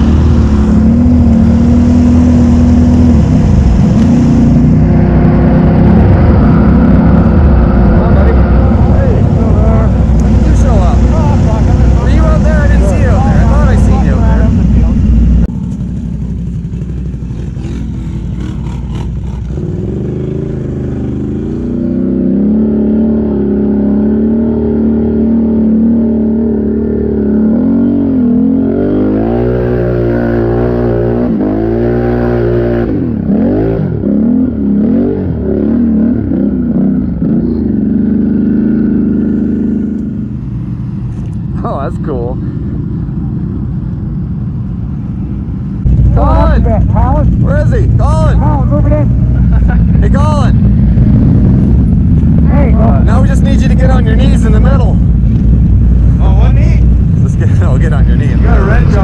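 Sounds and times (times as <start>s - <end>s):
atv engine revving: 0.0s - 59.0s.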